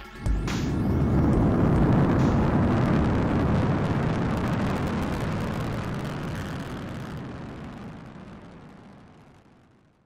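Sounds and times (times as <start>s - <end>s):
deep noisy rumble: 0.2s - 10.0s.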